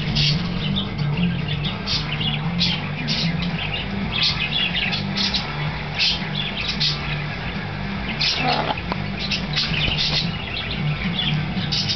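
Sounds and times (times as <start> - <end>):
steady low hum: 0.0 - 11.9.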